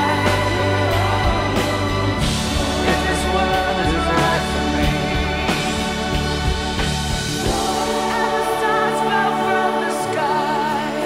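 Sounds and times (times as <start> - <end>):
choir singing: 0.0 - 11.0
live band music: 0.0 - 11.0.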